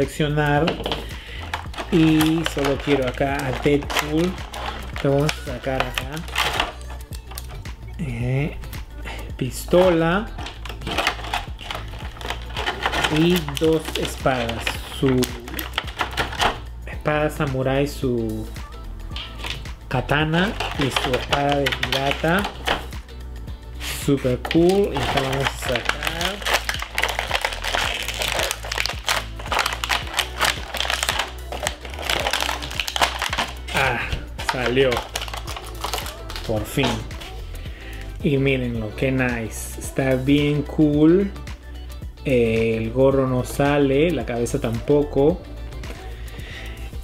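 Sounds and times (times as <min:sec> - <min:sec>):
plastic packaging crinkling: 0:00.0 - 0:07.6, 0:09.9 - 0:16.7, 0:19.2 - 0:22.9, 0:23.9 - 0:37.4
background music with steady beat: 0:00.0 - 0:47.0.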